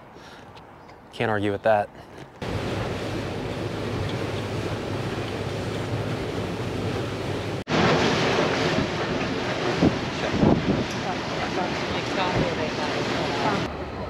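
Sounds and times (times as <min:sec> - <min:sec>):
water rushing past boat hull: 0:02.4 - 0:13.8
wind buffeting microphone: 0:02.4 - 0:14.0.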